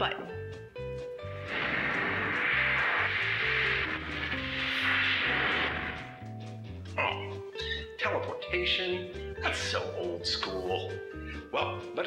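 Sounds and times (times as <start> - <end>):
music with pulsing bass: 1.2 - 7.0
hissing whoosh sound effect: 1.3 - 6.3.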